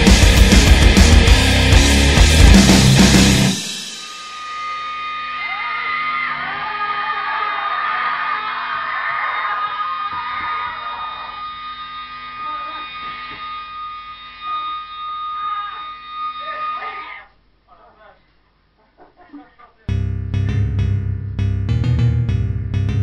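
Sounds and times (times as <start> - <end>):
guitar amplifier feedback tone: 0.0 - 6.8, 19.9 - 23.0
men yelling and whooping: 5.4 - 11.3
amplifier hum: 19.9 - 23.0.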